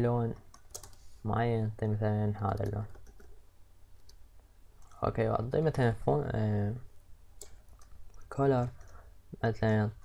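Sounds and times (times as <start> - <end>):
low steady hum: 0.0 - 10.0
computer mouse and keyboard clicks: 0.3 - 1.0, 2.5 - 3.4, 7.4 - 9.0.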